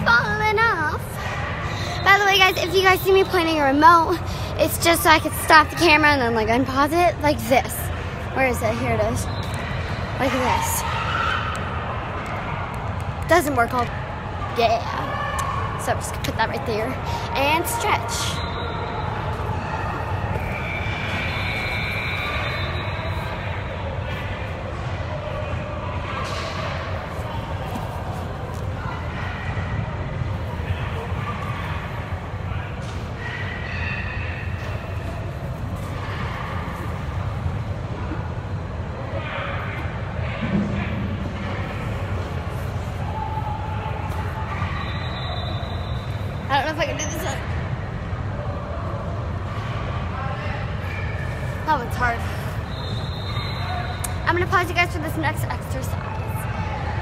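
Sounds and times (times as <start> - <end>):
low rumble of indoor hall: 0.0 - 57.0.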